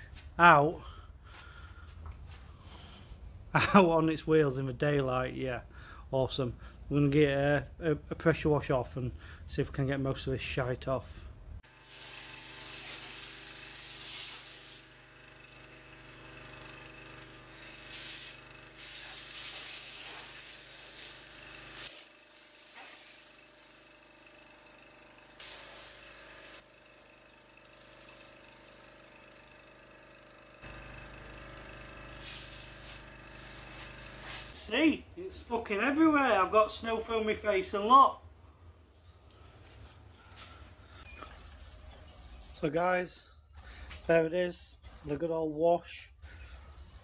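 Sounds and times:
pressure washer pump hum: 11.6s - 41.2s
water spray hissing: 11.7s - 15.0s, 17.5s - 23.7s, 25.3s - 26.6s, 30.7s - 34.8s.

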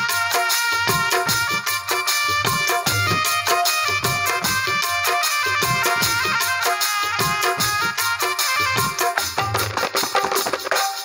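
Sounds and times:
held keyboard melody notes: 0.0s - 9.4s
electronic keyboard drum rhythm: 0.0s - 11.0s.

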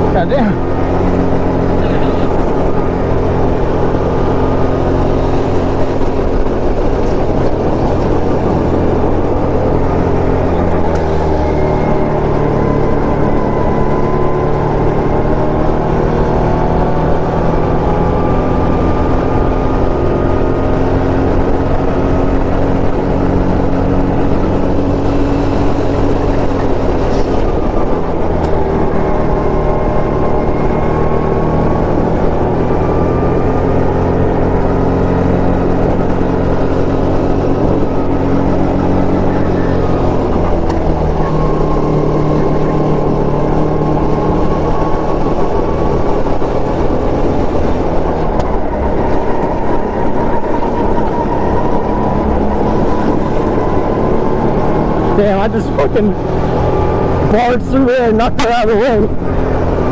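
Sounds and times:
go-kart engine running hard: 0.0s - 59.9s.

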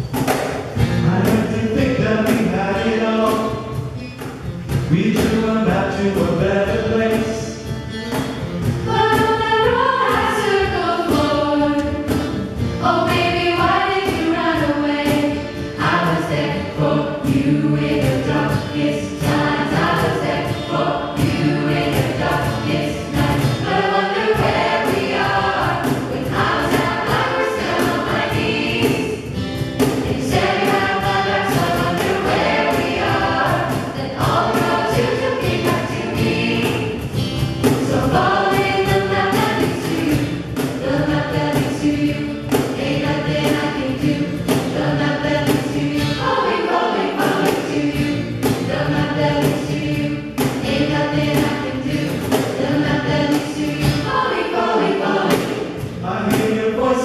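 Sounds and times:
steady beat: 0.0s - 56.8s
jazz choir singing in harmony: 0.6s - 57.0s.

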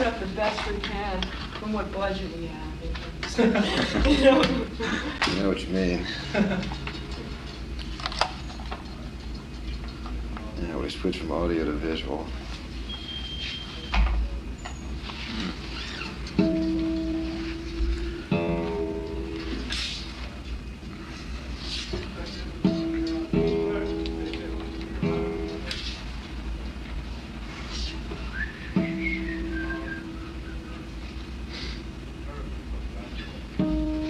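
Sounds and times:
acoustic guitar strings plucked: 33.6s - 34.0s.

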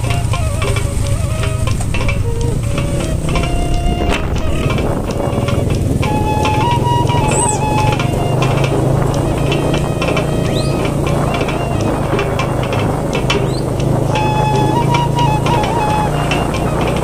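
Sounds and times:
melody of held notes: 0.0s - 17.0s.

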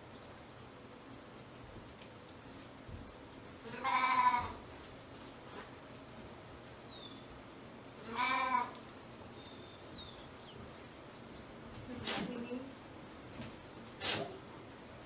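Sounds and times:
sheep bleating: 3.6s - 4.6s, 8.0s - 8.8s.

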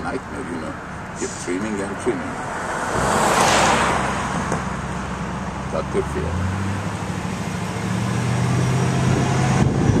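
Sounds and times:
car engine humming: 0.0s - 10.0s
road noise: 0.0s - 10.0s.

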